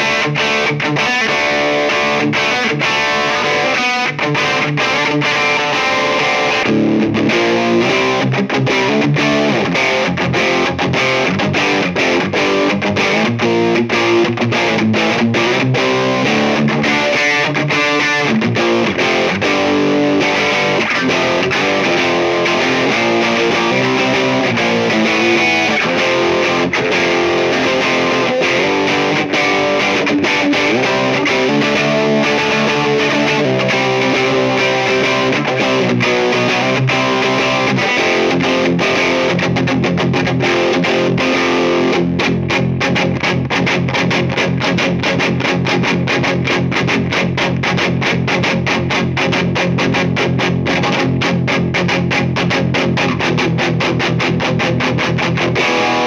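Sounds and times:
distorted electric guitar: 0.0 - 56.0.

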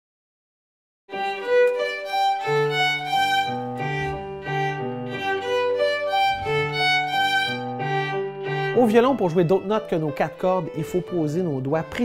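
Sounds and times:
violin melody: 1.1 - 12.0.

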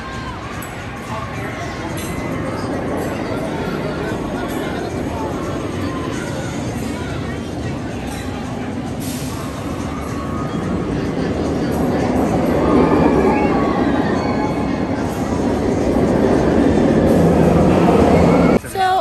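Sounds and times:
roller coaster rumbling on track: 0.0 - 19.0.

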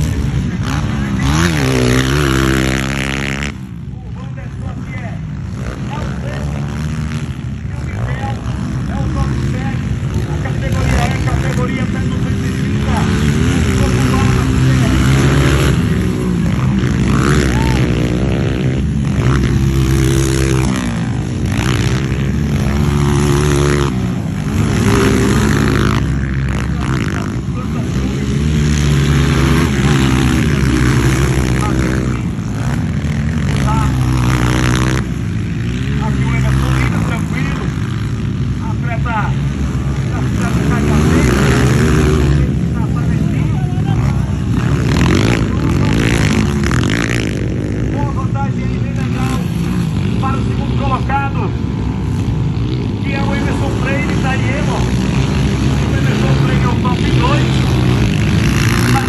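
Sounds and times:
dirt bike engines revving: 0.0 - 59.0.

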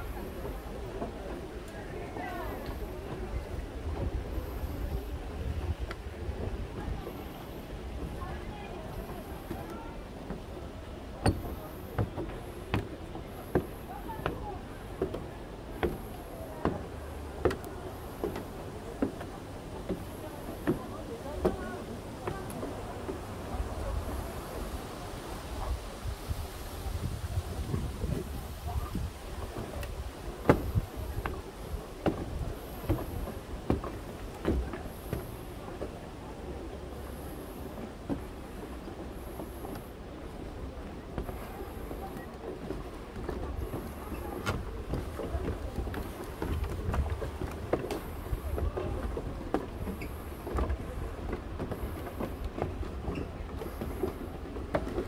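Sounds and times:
continuous low rumble: 0.0 - 55.0
footsteps on wooden boardwalk: 0.0 - 55.0.

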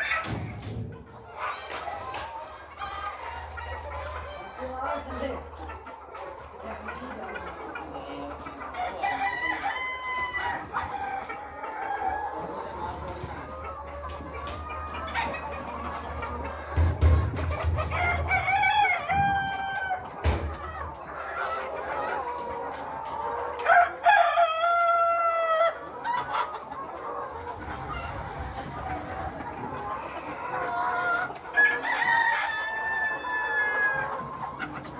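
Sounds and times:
hens clucking: 0.0 - 34.9
rooster crowing: 31.6 - 34.2.

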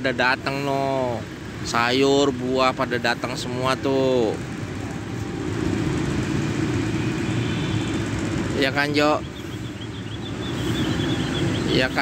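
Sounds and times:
street traffic noise: 0.0 - 12.0
vehicle engine rumbling: 0.0 - 12.0.

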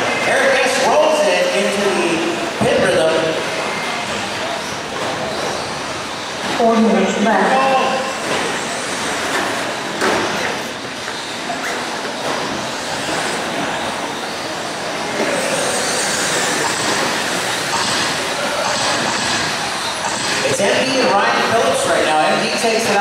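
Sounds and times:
rc truck motors and tyres on dirt: 11.1 - 20.4.

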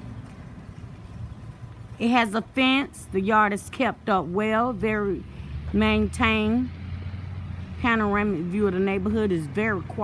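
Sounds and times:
outdoor background rumble: 0.0 - 10.0.

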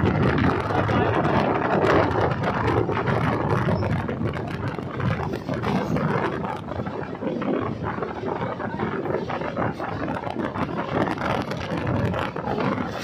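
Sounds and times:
train clattering: 0.0 - 13.0
train rumbling across a bridge: 0.0 - 13.0.

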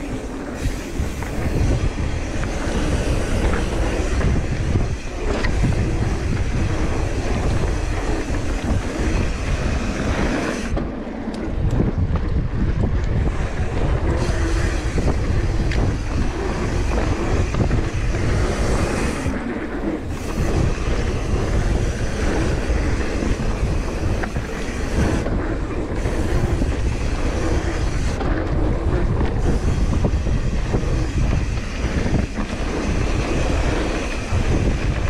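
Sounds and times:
bike clicks and rattles: 0.0 - 35.0
bike tyres rolling on dirt: 0.0 - 35.0
wind rushing over microphone: 0.0 - 35.0.

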